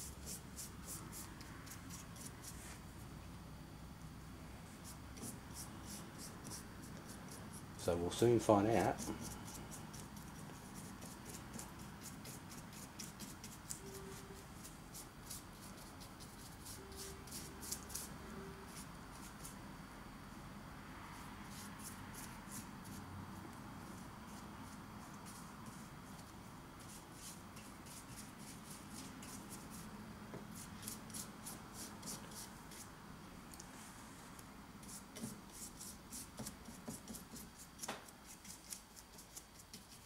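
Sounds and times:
paintbrush strokes on wood: 0:04.7 - 0:19.6.

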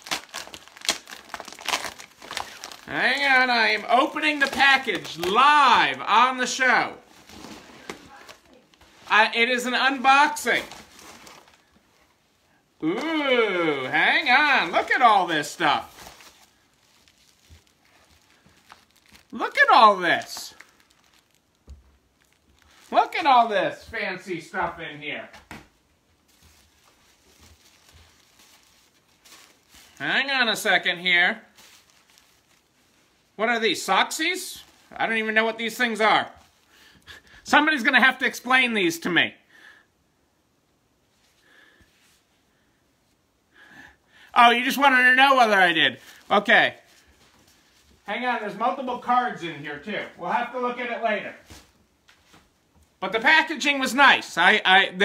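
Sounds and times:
plastic mailer crinkling: 0:00.0 - 0:12.0, 0:12.8 - 0:23.8, 0:26.2 - 0:33.3
tissue paper rustling: 0:00.0 - 0:24.0, 0:26.0 - 0:33.4, 0:44.4 - 0:53.9.

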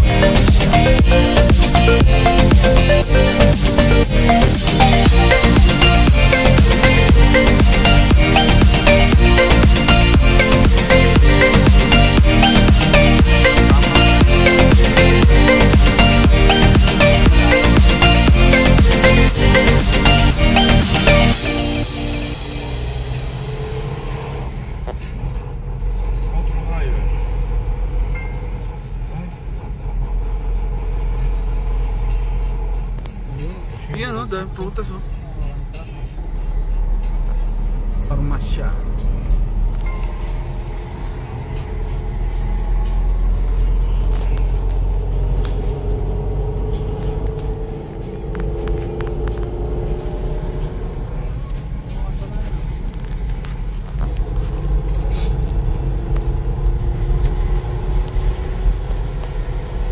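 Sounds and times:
low rumble of engine and tyres: 0:00.0 - 0:59.9.

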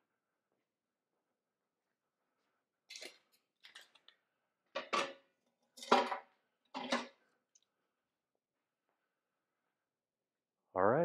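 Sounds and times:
metal objects clanking: 0:05.8 - 0:06.2, 0:06.8 - 0:07.1.

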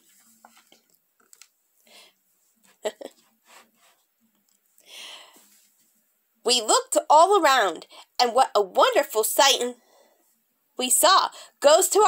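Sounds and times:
book page turning: 0:00.0 - 0:01.6.

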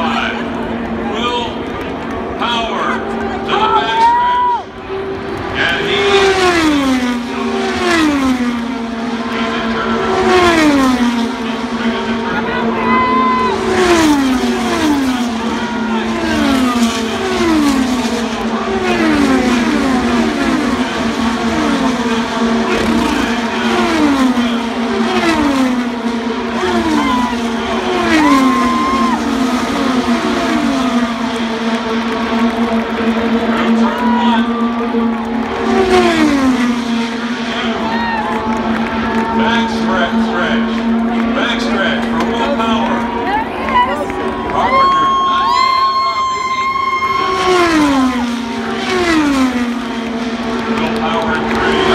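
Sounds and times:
race cars passing: 0:00.0 - 0:51.9.

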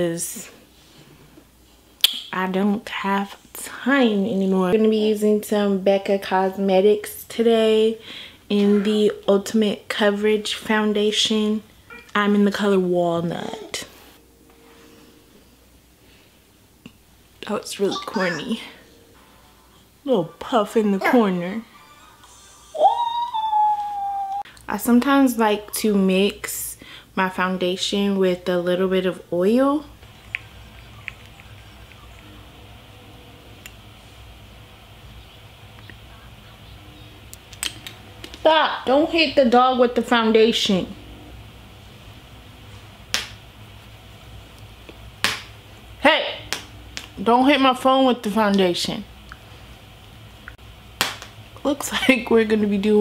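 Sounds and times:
low steady hum: 0:00.0 - 0:53.0
high-pitched whining cry: 0:21.7 - 0:24.4
sharp snapping clicks: 0:37.3 - 0:38.4.

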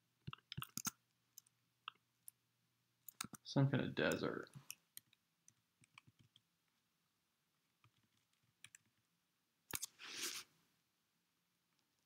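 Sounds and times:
computer keys clicking: 0:00.2 - 0:02.4, 0:03.0 - 0:03.4, 0:04.1 - 0:06.5, 0:07.8 - 0:09.0.

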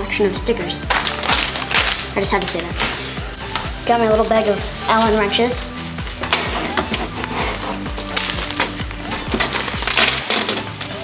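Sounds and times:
background music: 0:00.0 - 0:11.0
metal wrenches clinking and rattling: 0:05.8 - 0:11.0.

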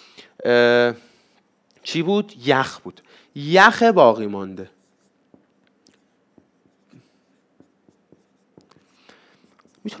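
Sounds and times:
marker pen on whiteboard: 0:03.8 - 0:10.0.

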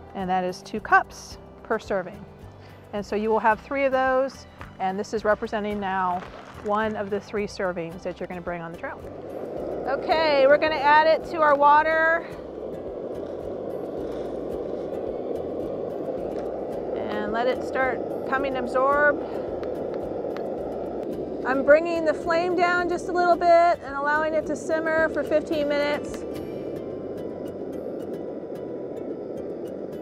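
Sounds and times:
stove burning low rushing: 0:00.0 - 0:30.0.

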